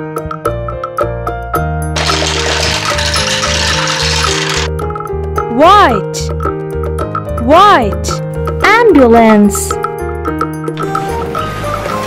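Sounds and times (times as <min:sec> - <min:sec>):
cheerful background music: 0:00.0 - 0:12.0
balls rattling and rushing: 0:02.0 - 0:04.7.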